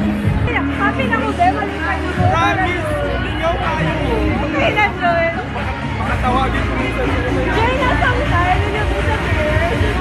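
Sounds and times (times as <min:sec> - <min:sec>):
close voices talking: 0:00.0 - 0:10.0
crowd babble: 0:00.0 - 0:10.0.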